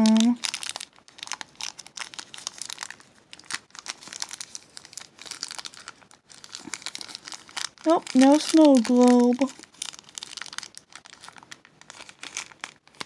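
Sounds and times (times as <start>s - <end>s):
plastic wrapper crinkling: 0.0s - 13.0s.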